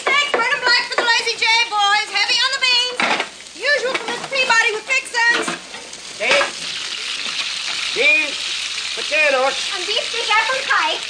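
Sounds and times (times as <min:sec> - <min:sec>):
food frying in skillets: 0:00.0 - 0:11.0.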